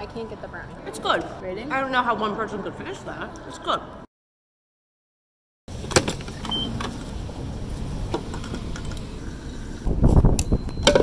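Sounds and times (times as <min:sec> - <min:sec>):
high beep: 0:06.5 - 0:06.7, 0:10.4 - 0:11.0.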